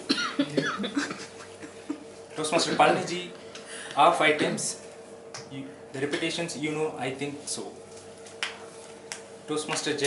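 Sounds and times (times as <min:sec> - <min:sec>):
person coughing: 0:00.0 - 0:02.0, 0:04.3 - 0:04.7.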